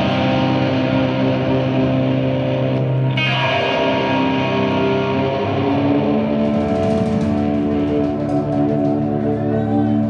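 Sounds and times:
electric guitar chord ringing: 0.0 - 9.8
live band music: 3.3 - 10.0.

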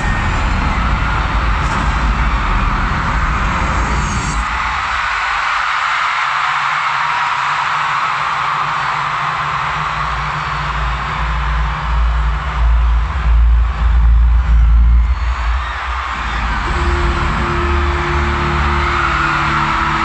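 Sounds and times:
concert intro music with heavy bass: 0.0 - 5.8, 7.4 - 20.0
crowd screaming: 0.0 - 20.0
low drone: 16.6 - 20.0.

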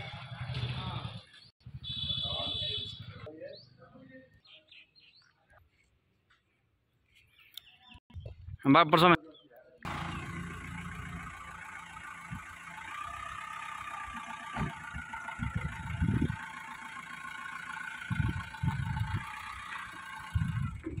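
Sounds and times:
diesel engine idling: 9.9 - 21.0
wind buffeting microphone: 14.6 - 16.4, 18.1 - 19.3, 20.3 - 21.0.

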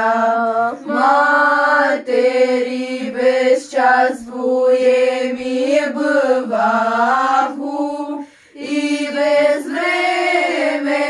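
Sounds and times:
women singing a carol unaccompanied: 0.0 - 11.0.

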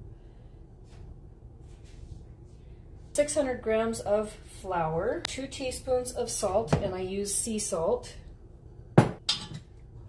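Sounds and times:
glass jar knocking on counter: 9.0 - 9.6.

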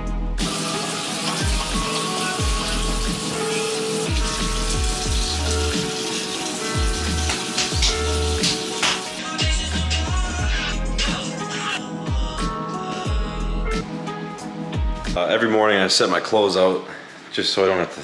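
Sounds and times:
hip-hop music with sliding bass: 0.0 - 15.2
sink tap running: 0.4 - 9.2.

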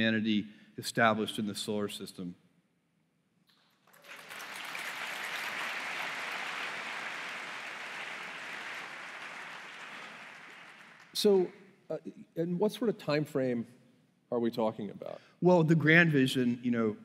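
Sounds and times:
audience applause: 3.9 - 11.4.

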